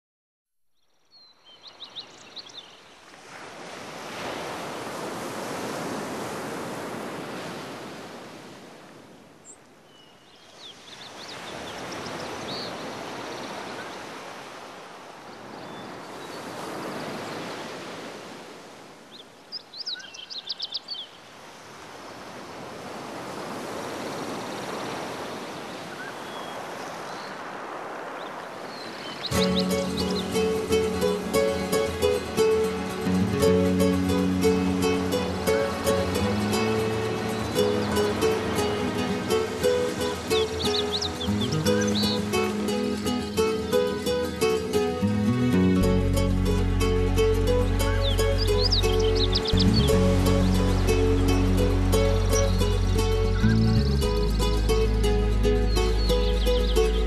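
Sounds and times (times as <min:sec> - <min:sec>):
sea waves washing in: 0:01.8 - 0:09.4, 0:10.4 - 0:19.2, 0:21.2 - 0:57.0
high bird chirps: 0:28.8 - 0:32.6, 0:39.7 - 0:42.5, 0:47.9 - 0:51.4, 0:52.2 - 0:57.0.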